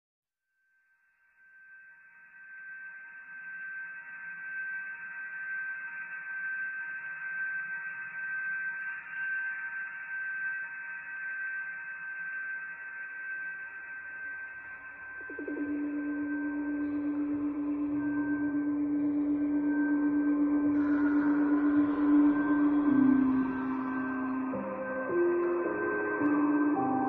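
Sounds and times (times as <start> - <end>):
ambient drone music: 3.0 - 27.0.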